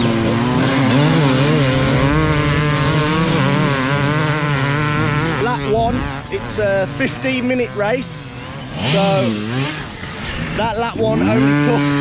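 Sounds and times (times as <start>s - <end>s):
dirt bike engines revving: 0.0s - 12.0s.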